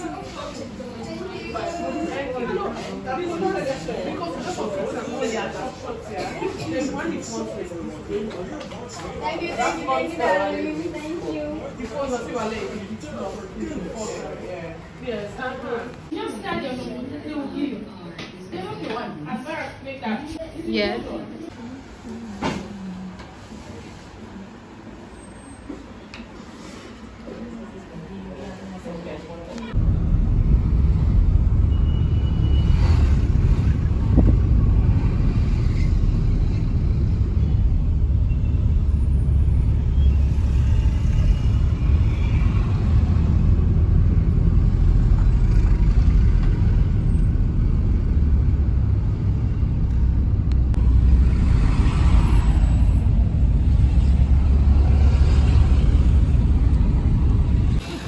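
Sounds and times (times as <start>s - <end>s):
car road and engine rumble: 29.7s - 58.0s.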